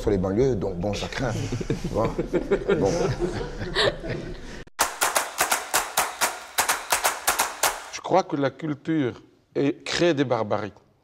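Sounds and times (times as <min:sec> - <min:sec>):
rapid sharp clicks: 0:04.8 - 0:08.0.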